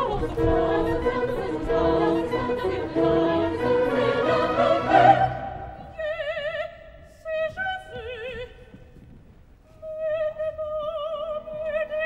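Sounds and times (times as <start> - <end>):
choir singing held notes: 0.0 - 6.0
orchestral accompaniment: 0.0 - 6.0.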